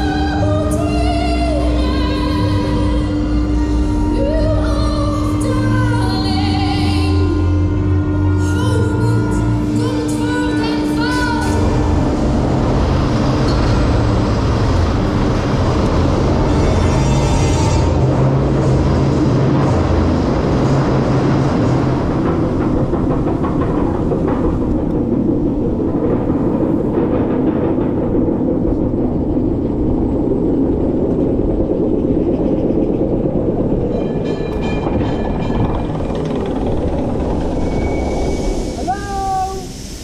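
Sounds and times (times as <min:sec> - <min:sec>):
roller coaster chain clattering: 0:00.0 - 0:40.0.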